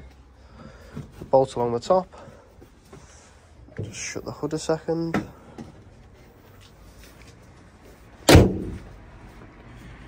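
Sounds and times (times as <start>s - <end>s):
car bonnet slamming shut: 8.2s - 8.9s.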